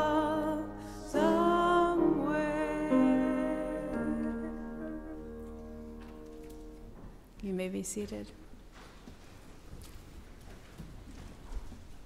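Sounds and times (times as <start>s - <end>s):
knocks and shuffling in wooden pews: 4.2s - 12.0s.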